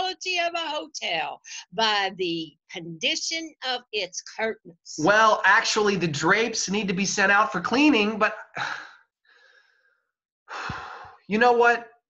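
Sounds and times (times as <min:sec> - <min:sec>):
person sighing: 0:08.6 - 0:09.0, 0:10.5 - 0:11.2.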